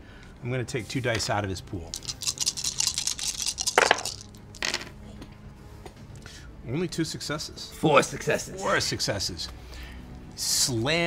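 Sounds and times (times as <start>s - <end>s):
dice clattering on tabletop: 1.9s - 5.0s
dice knocks: 2.0s - 4.9s.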